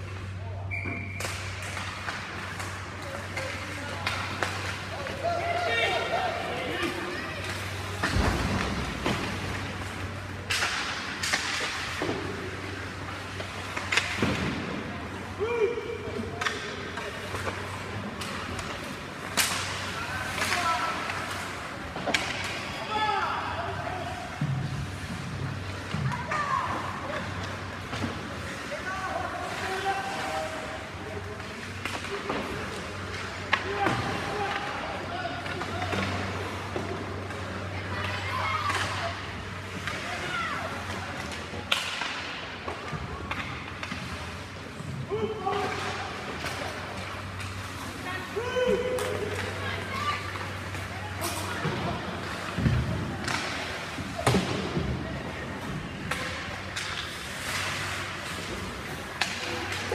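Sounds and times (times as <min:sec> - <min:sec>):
low rink hum: 0:00.0 - 0:59.9
shouts and voices: 0:04.9 - 0:07.7, 0:26.1 - 0:27.0
hockey sticks and puck knocking: 0:16.4 - 0:22.8, 0:40.8 - 0:47.7, 0:48.6 - 0:55.0, 0:55.9 - 0:59.9.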